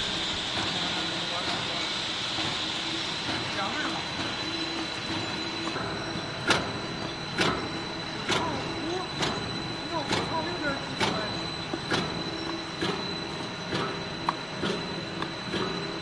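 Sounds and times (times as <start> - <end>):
high whine: 0.0 - 16.0
machine hum: 0.0 - 16.0.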